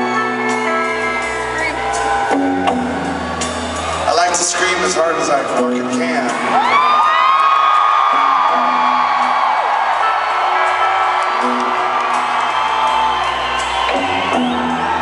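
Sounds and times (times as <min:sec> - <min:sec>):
arena crowd noise: 0:00.0 - 0:15.0
long high scream: 0:06.6 - 0:15.0.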